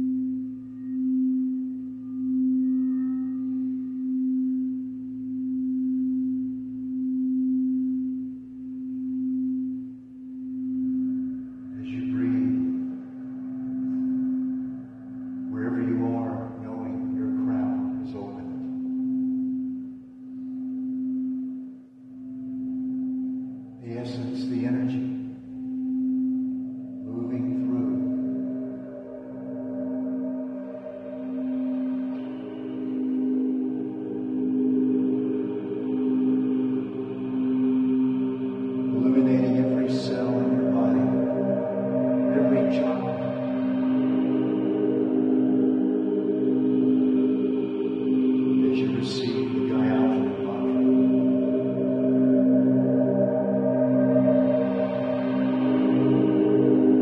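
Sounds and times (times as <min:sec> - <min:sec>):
crystal singing bowl tone: 0:00.0 - 0:57.0.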